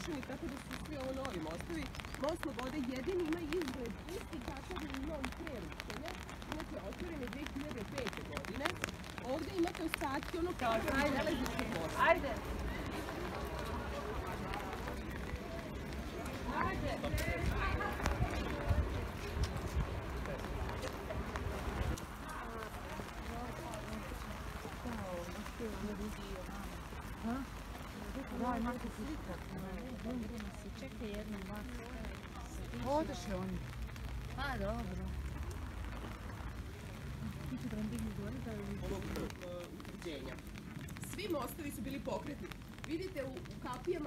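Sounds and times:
low uneven rumble: 0:00.0 - 0:44.0
people talking indistinctly: 0:00.0 - 0:44.0.

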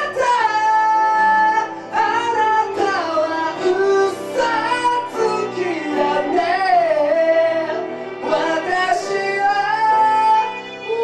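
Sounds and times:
man singing in a high voice: 0:00.0 - 0:11.0.

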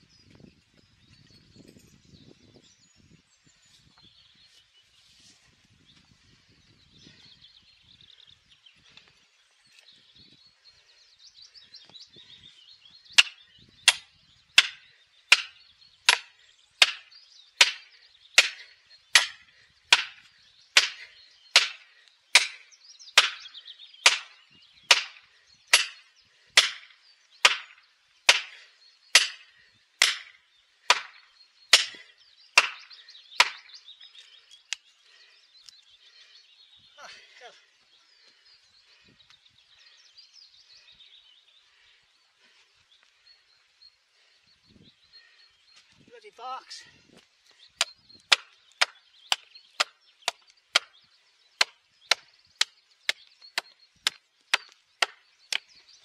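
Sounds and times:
faint birdsong: 0:00.0 - 0:56.0.

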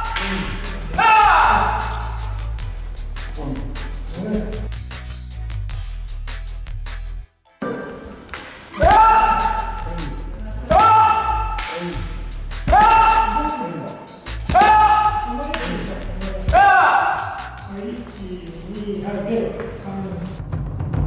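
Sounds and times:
drawn-out kiai shout: 0:00.0 - 0:02.4, 0:08.7 - 0:18.1.

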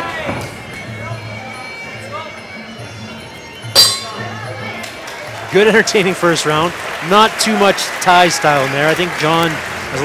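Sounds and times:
boxing ring bell clang: 0:03.7 - 0:04.5.

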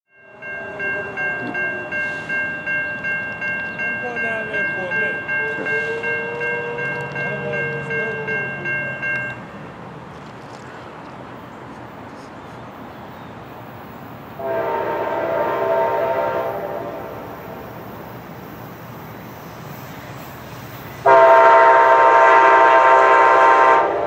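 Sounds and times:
railroad crossing bell ringing: 0:00.1 - 0:09.8, 0:14.4 - 0:24.0.

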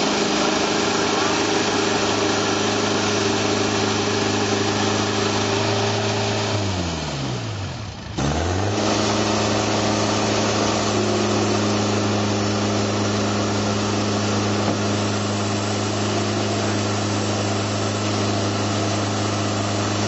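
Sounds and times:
sawmill engine running: 0:00.0 - 0:20.0.

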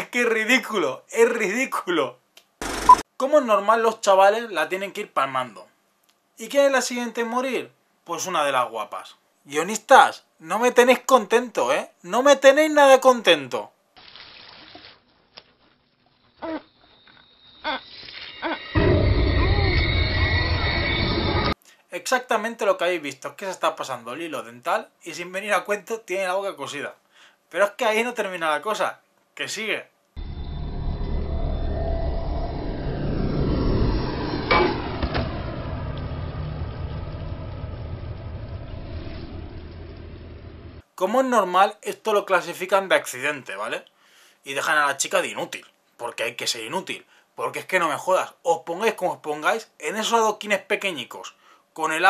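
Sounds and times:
faint click: 0:06.0 - 0:06.2
low rumbling drone: 0:18.4 - 0:21.6, 0:30.2 - 0:40.8
horror music sting: 0:18.7 - 0:21.6, 0:30.2 - 0:40.8
sharp hits: 0:30.2 - 0:40.8.

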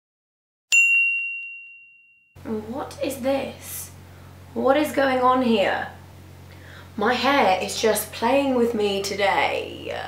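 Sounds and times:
bright bell-like chime: 0:00.7 - 0:02.4.

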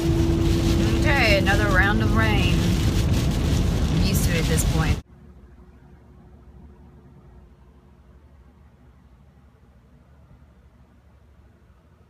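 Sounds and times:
low steady rumble: 0:00.0 - 0:12.0
faint hum: 0:04.9 - 0:12.0.

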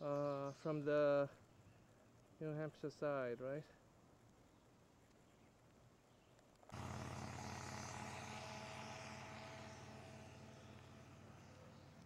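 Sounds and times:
engine humming: 0:06.7 - 0:12.0.

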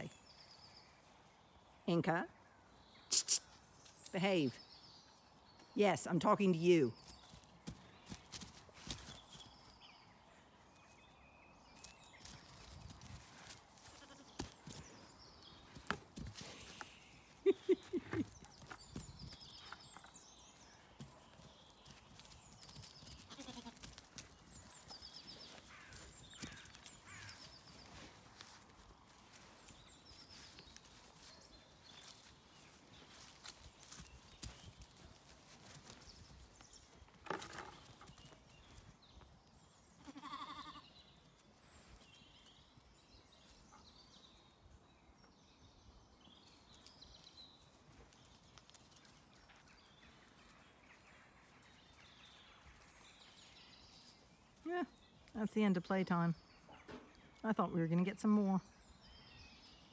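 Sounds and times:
lambs bleating: 0:13.8 - 0:14.4, 0:23.3 - 0:23.8, 0:40.0 - 0:40.8.

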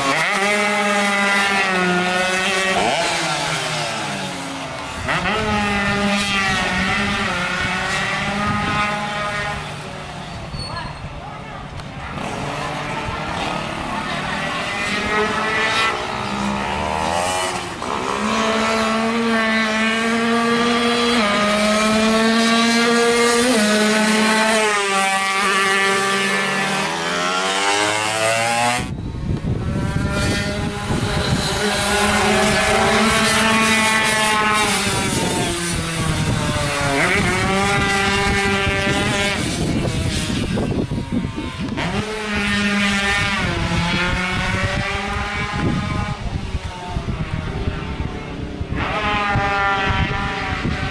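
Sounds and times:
motorcycle engine at full throttle: 0:00.0 - 0:50.9.

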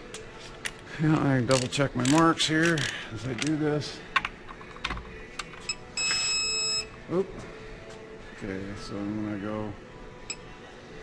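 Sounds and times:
wrench ratchet clicks: 0:01.5 - 0:03.6
electronic beep: 0:05.7 - 0:06.9.

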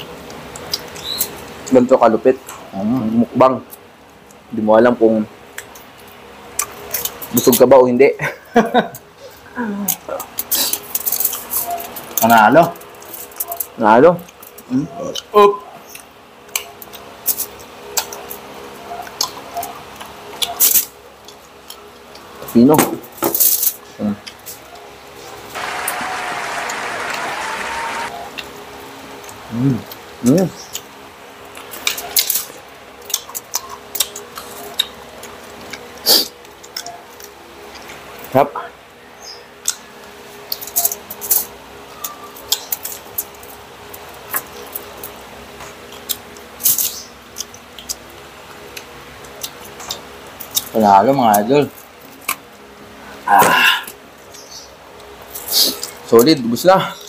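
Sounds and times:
crispy pork crunching and crackling: 0:00.0 - 0:04.5, 0:05.4 - 0:08.1, 0:09.9 - 0:53.2, 0:53.8 - 0:57.0
steady noise: 0:25.4 - 0:28.8.

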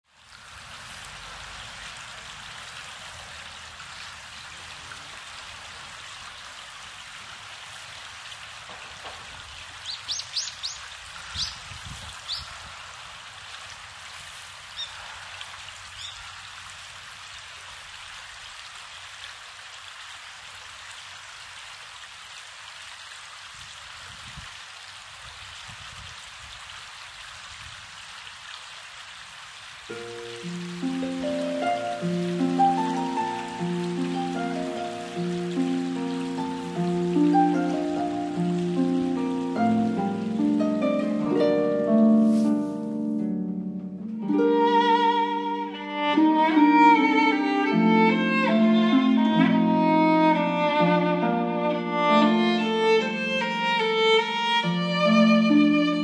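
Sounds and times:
river water rushing: 0:00.1 - 0:24.0, 0:26.2 - 0:43.3, 0:44.2 - 0:56.0
high bird chirps: 0:09.8 - 0:12.6.

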